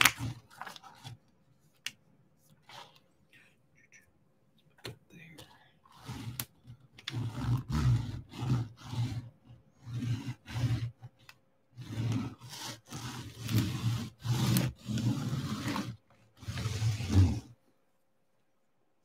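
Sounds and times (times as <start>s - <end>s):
plastic straightedge rasping on canvas: 5.9s - 17.5s.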